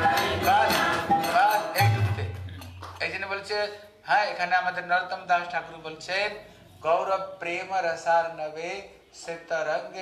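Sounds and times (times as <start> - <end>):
devotional chant singing: 0.0 - 2.5.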